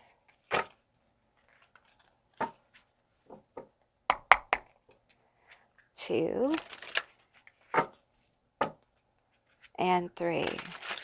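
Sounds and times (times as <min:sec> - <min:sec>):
cards shuffling: 0:01.4 - 0:02.9, 0:06.4 - 0:08.0, 0:10.4 - 0:11.0.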